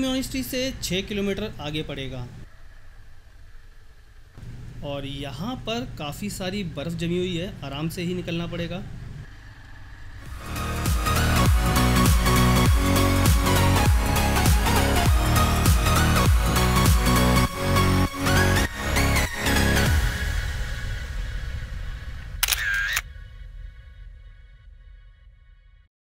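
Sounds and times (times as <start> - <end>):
motorcycle engine and road rumble: 7.2 - 10.9
electronic dance music: 10.3 - 20.4
camera shutter clicks: 22.4 - 23.0.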